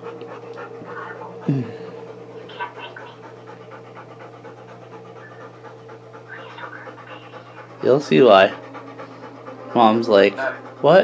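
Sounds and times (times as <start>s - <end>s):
dog panting: 0.0s - 11.0s
low hum: 0.0s - 11.0s.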